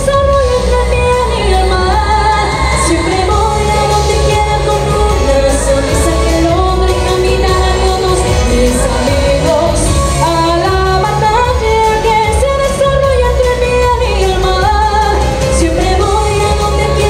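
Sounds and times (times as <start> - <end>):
backing music with bass and drums: 0.0 - 17.0
woman singing pop song: 0.0 - 17.0.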